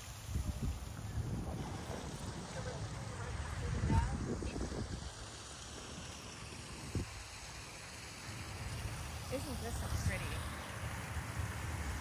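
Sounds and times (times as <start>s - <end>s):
wind rumble on microphone: 0.0s - 7.4s.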